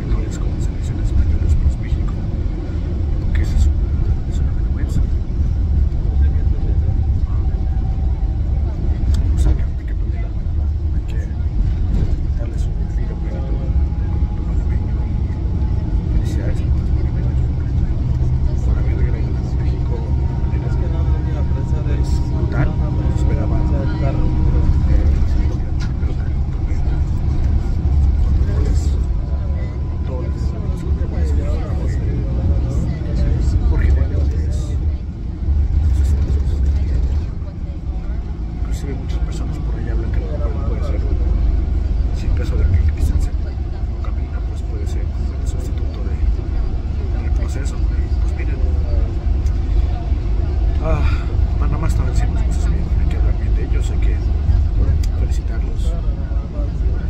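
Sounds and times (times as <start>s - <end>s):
man talking: 0.0s - 2.6s, 3.2s - 8.0s, 8.8s - 35.0s, 38.6s - 46.4s, 47.0s - 49.7s, 50.7s - 57.0s
bus engine and road rumble: 0.0s - 57.0s.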